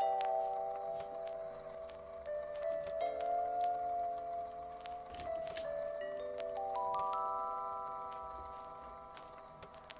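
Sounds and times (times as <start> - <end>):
background music with ringing struck notes: 0.0 - 9.6.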